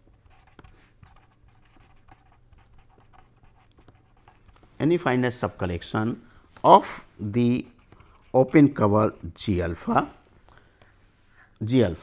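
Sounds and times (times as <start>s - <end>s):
pen scratching on paper: 0.0s - 4.6s.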